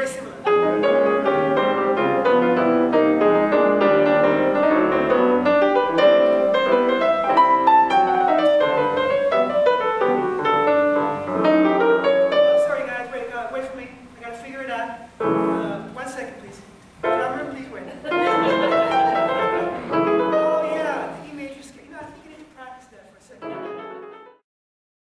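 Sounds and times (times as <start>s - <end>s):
jazz piano: 0.0s - 13.9s, 15.0s - 22.6s, 23.4s - 24.4s.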